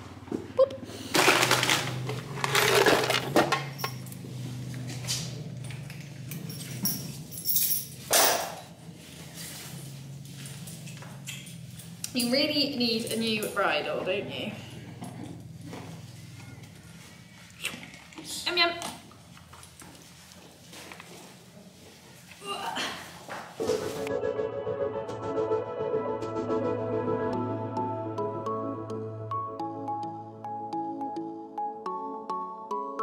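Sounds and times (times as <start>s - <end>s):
steady low hum: 3.7s - 18.2s.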